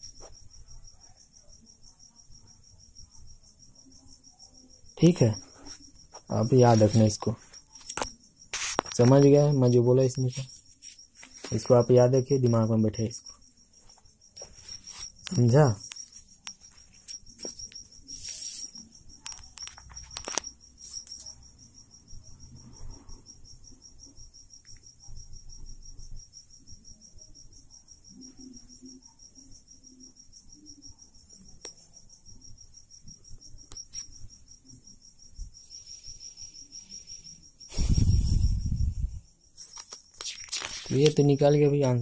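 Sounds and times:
cricket trilling: 0:00.0 - 0:42.0
paper rustling: 0:39.6 - 0:41.2.

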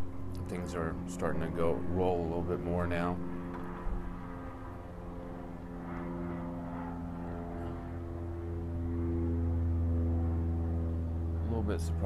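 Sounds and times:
airplane engine drone overhead: 0:00.0 - 0:12.0.

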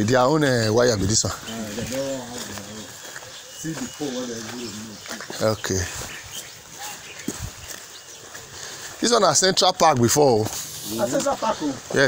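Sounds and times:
footsteps on muddy dirt road: 0:00.0 - 0:12.0
faint steady hiss: 0:08.6 - 0:12.0.

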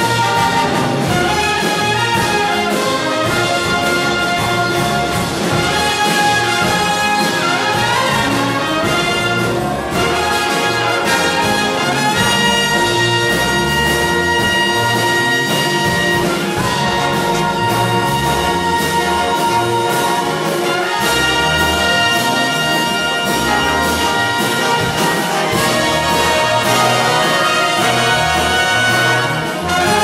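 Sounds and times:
jazz big band playing: 0:00.0 - 0:30.0.

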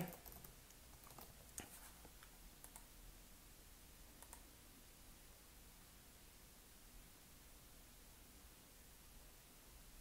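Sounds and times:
faint computer mouse clicks: 0:04.2 - 0:04.5.

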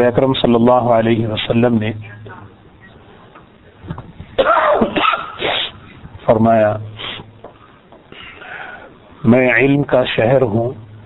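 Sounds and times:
man coughing: 0:04.4 - 0:05.8.

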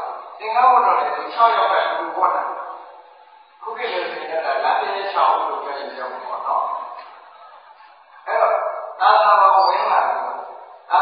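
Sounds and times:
man talking: 0:00.0 - 0:03.0, 0:03.6 - 0:07.0, 0:08.2 - 0:11.0.

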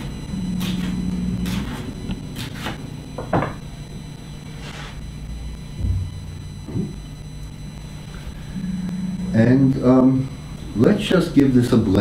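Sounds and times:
steady low rumble: 0:05.1 - 0:10.8.

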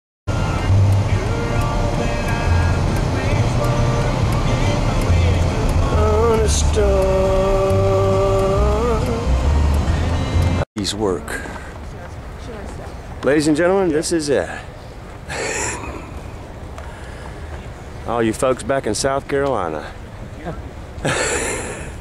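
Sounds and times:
car rumble on highway: 0:00.3 - 0:10.6
melody of long held notes: 0:00.3 - 0:10.6.

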